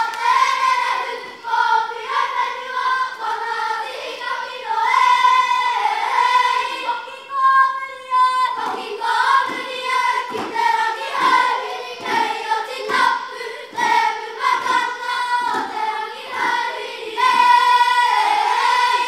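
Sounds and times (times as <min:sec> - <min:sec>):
children singing in unison: 0:00.0 - 0:19.0.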